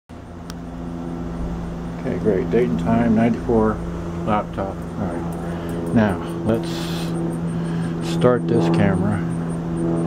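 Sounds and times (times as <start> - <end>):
machine hum and rumble: 0.1 - 10.0.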